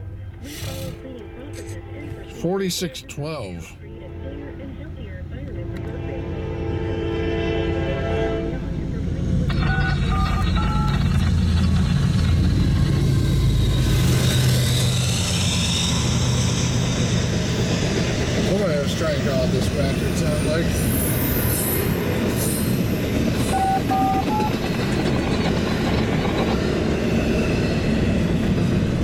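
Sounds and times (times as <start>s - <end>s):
diesel locomotive engine rumble: 0.0s - 29.0s
locomotive air horn: 0.4s - 2.4s, 5.6s - 8.8s
freight cars clattering by: 9.3s - 21.0s.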